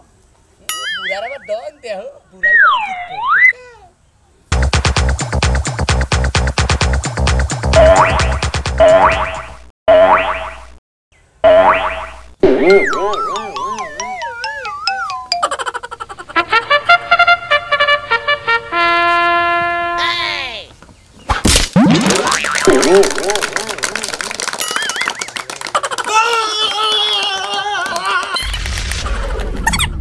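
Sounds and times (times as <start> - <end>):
comic boing sound effect: 0.7 - 1.5, 7.8 - 10.7, 11.4 - 15.5, 21.8 - 23.4
whack: 4.5 - 7.0, 21.3 - 23.4
fast dance music: 4.5 - 8.8
hand clapping: 22.0 - 28.8.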